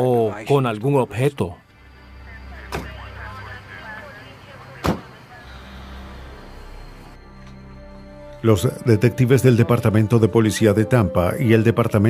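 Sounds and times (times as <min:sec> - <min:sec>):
vehicle engine idling: 0:04.4 - 0:07.2.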